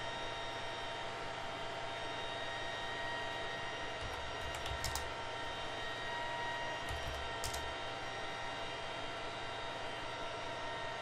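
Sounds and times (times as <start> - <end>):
computer keyboard keystroke: 4.0 - 5.1, 6.9 - 7.7
steady hum and hiss: 6.9 - 8.6.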